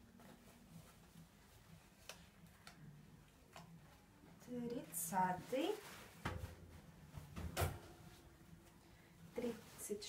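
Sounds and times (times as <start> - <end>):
faint clicks of handled jeans: 2.0 - 3.8.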